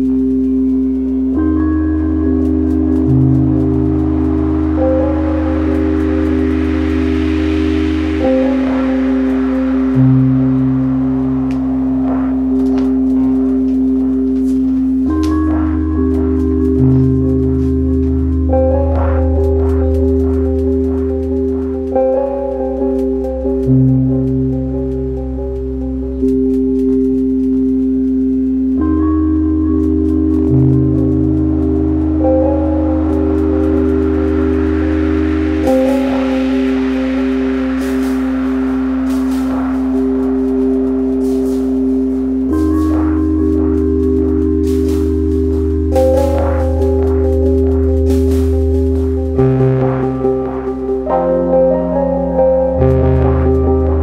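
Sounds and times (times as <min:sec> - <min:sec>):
low synth bass: 0:00.0 - 0:54.0
sustained synth drones: 0:00.0 - 0:54.0.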